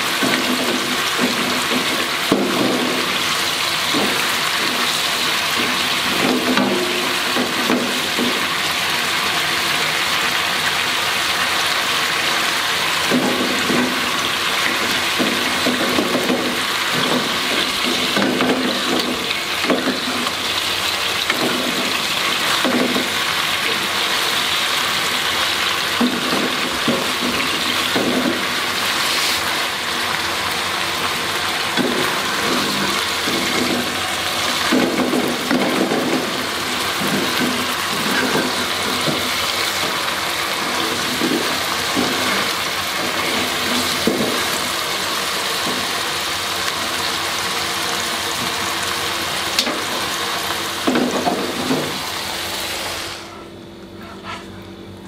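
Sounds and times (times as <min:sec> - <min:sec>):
eggs sizzling in oil: 0:00.0 - 0:53.2
spatula scraping pan: 0:54.0 - 0:54.6.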